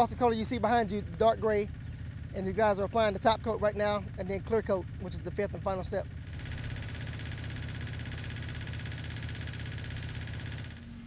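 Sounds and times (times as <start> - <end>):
paint sprayer motor hum: 0.0 - 11.0
spray gun hiss: 6.2 - 11.0.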